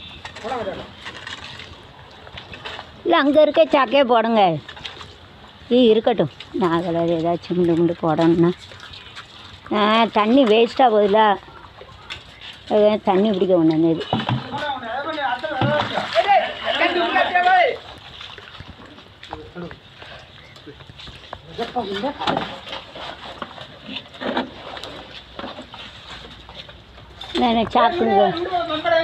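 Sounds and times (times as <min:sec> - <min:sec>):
people talking: 0:09.7 - 0:11.4, 0:12.7 - 0:17.8, 0:27.4 - 0:29.0.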